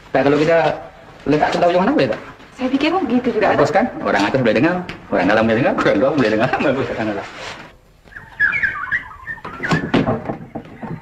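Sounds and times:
chicken warbling call: 8.1 - 11.0.

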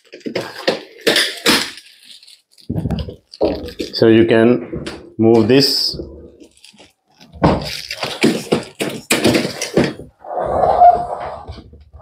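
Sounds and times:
case scraping on tile floor: 7.2 - 12.0.

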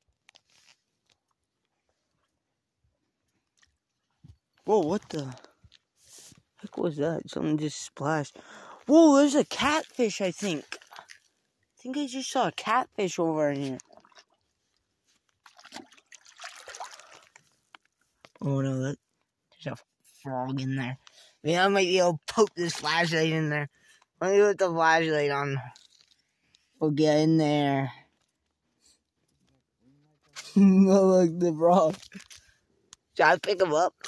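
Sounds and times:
water sloshing at lake edge: 0.0 - 6.8, 7.7 - 24.2, 25.7 - 26.8, 31.8 - 34.0.

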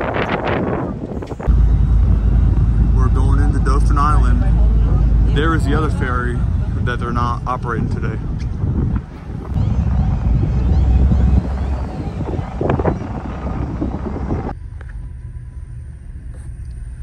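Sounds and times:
wind buffeting microphone: 0.0 - 14.6
low hum inside car: 1.4 - 6.9, 9.4 - 17.0.

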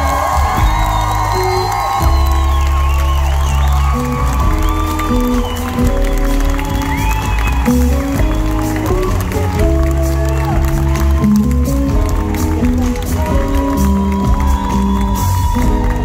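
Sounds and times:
bass line: 0.0 - 16.0
live soul band: 0.0 - 16.0.

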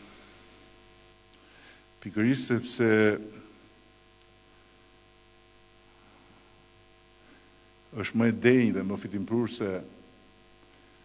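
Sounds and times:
faint mains hum: 0.0 - 11.0
man speaking: 2.0 - 3.5, 7.9 - 10.0.

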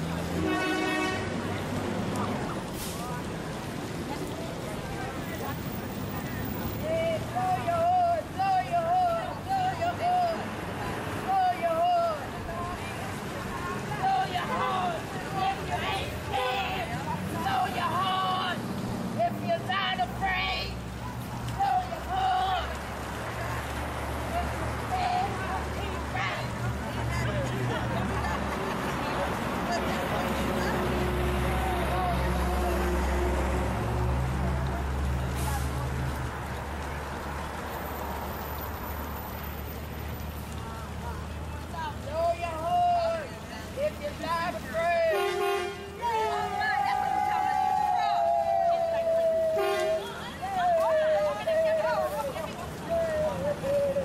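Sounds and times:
group of people talking and calling: 0.0 - 54.0.

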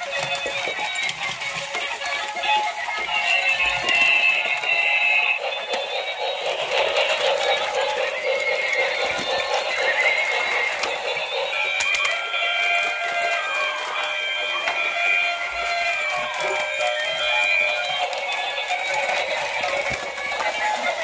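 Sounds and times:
tinny electronic toy tunes: 0.0 - 21.0.

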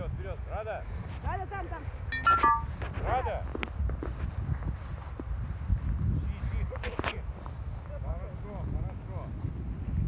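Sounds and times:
wind rumbling on microphone: 0.0 - 10.0
footsteps in dry grass: 2.8 - 10.0.

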